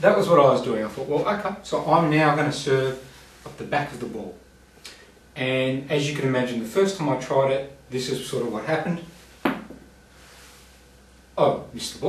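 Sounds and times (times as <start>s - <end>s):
table tennis ball bouncing: 9.4s - 9.9s.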